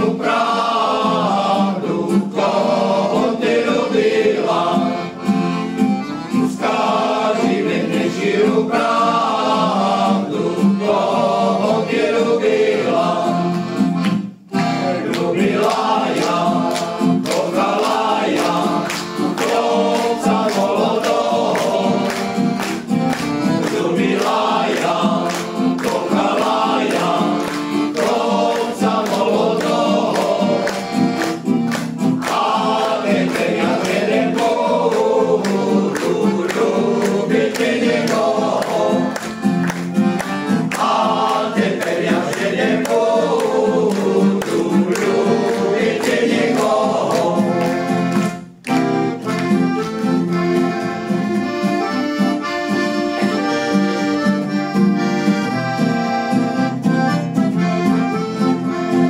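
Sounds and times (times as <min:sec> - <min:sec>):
male choir singing: 0:00.0 - 0:05.3, 0:06.4 - 0:13.8, 0:14.6 - 0:22.6, 0:23.5 - 0:31.3, 0:32.1 - 0:39.4, 0:40.6 - 0:48.2
acoustic guitar: 0:00.0 - 0:59.0
piano accordion: 0:00.0 - 0:59.0.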